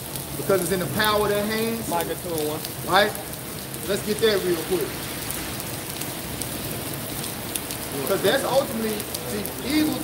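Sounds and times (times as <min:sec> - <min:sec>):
rain on wet street: 0:00.0 - 0:10.0.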